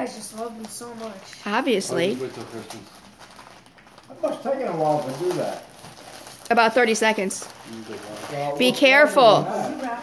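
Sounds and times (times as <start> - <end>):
paper bag rustling and tearing: 0.0 - 9.4.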